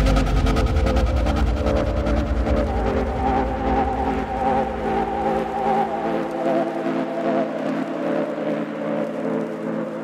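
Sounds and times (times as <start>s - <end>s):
low bass line: 0.0s - 6.1s
wavering synthesizer chords: 0.0s - 8.9s.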